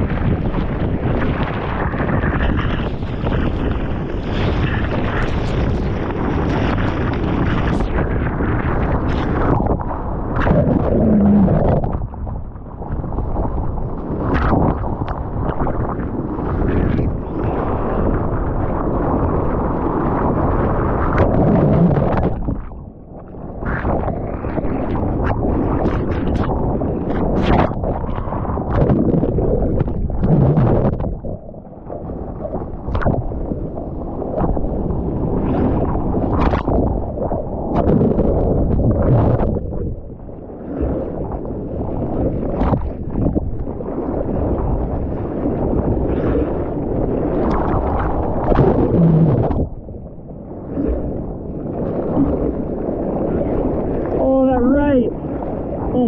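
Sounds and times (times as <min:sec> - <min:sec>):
whitewater churning and splashing: 0:00.0 - 0:22.8, 0:40.7 - 0:49.9.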